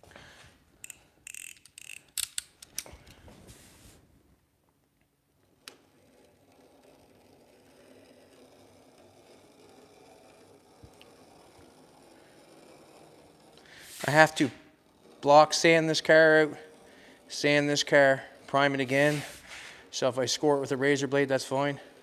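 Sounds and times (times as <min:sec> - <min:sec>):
small clicks: 0:00.8 - 0:03.2.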